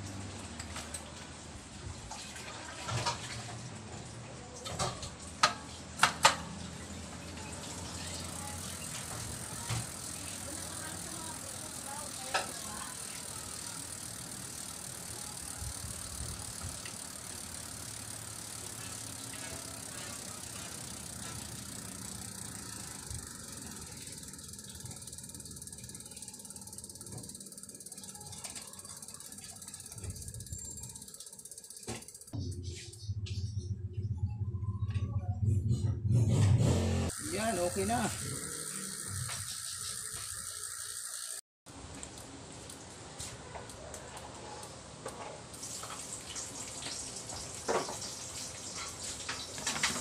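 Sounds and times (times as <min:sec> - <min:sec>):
freewheel hub ticking: 0:07.2 - 0:32.4, 0:37.1 - 0:41.4
bicycle wheel light rattle: 0:07.4 - 0:32.4, 0:37.2 - 0:42.8, 0:43.7 - 0:50.0.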